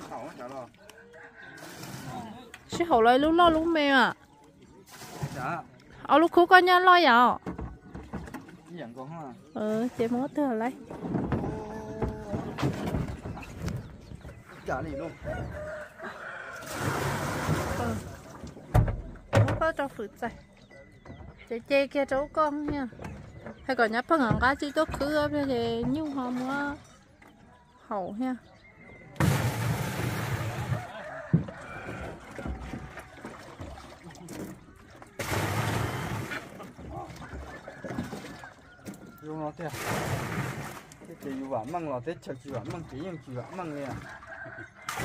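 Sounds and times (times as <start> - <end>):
plastic tubs being handled: 0.0 - 16.0, 29.0 - 45.0
water pouring into tank: 16.6 - 18.5, 29.2 - 30.9, 39.6 - 41.0
tub thump: 16.7 - 20.0, 29.2 - 33.9.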